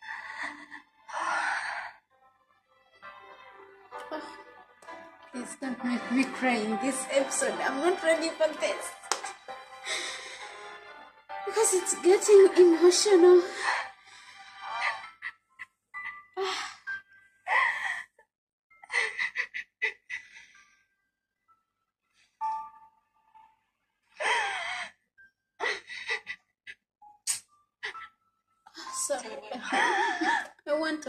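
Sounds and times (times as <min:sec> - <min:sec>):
faint soft music: 0:00.0 - 0:18.0, 0:27.0 - 0:31.0
woman crying in sobs: 0:14.6 - 0:15.4, 0:16.0 - 0:18.2, 0:18.8 - 0:20.3, 0:24.2 - 0:25.0, 0:25.6 - 0:26.4, 0:28.7 - 0:30.6.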